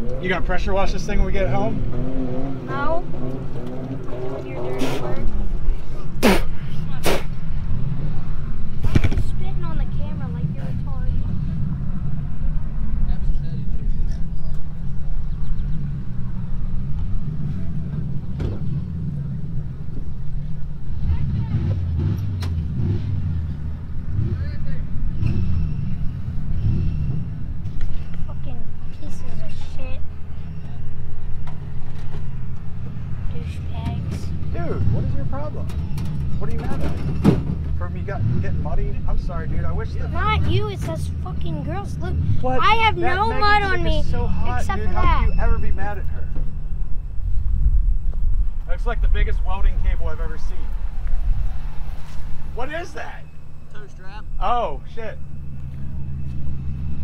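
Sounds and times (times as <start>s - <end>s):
distant voices: 0.0s - 57.0s
vehicle engines rumbling: 0.0s - 57.0s.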